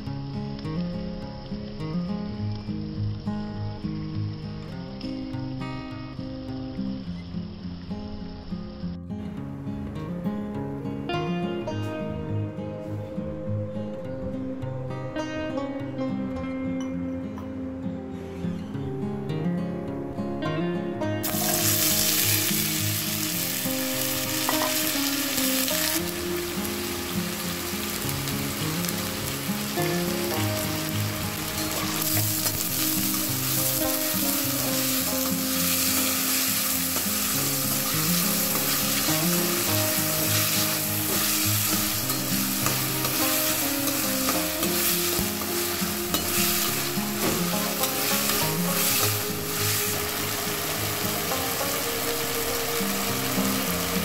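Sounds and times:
potatoes sizzling in hot oil: 21.2 - 54.0.

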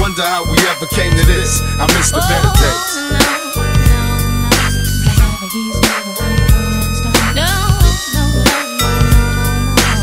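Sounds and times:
person rapping: 0.0 - 4.2, 5.1 - 8.9
hip hop beat: 0.0 - 10.0.

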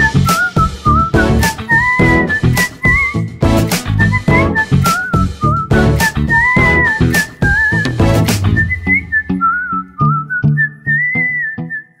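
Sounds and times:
plucked accompaniment with beat: 0.0 - 10.8
whistled melody: 0.0 - 12.0.

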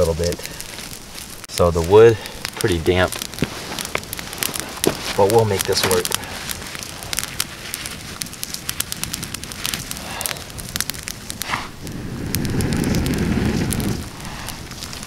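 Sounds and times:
campfire crackling and popping: 0.0 - 15.0.

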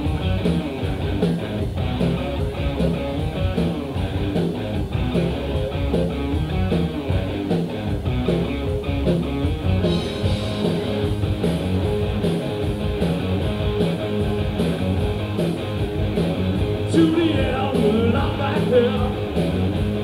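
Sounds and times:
distorted electric guitar: 0.0 - 20.0
electric bass: 0.0 - 20.0
steady drum beat: 0.0 - 20.0.

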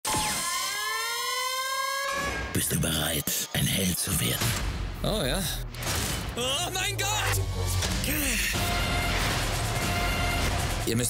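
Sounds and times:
rising siren-like trailer tone: 0.1 - 2.6.

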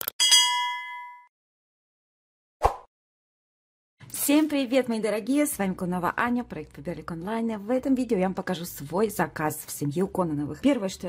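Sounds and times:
notification bell ding: 0.2 - 1.3.

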